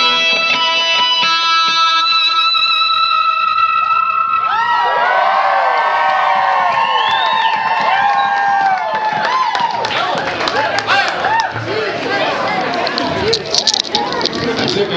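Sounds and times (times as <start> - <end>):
crowd cheering and whooping: 3.4 - 12.6
crowd clapping: 4.5 - 14.9.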